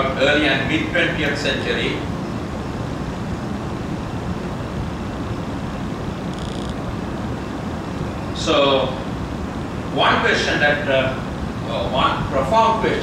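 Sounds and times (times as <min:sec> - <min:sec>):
air conditioning hum: 0:00.0 - 0:13.0
faint high buzz: 0:02.0 - 0:10.0.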